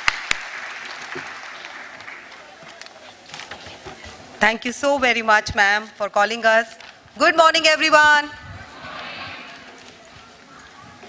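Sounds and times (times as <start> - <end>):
sharp close claps: 0.0 - 3.0
audience applauding: 0.0 - 3.2.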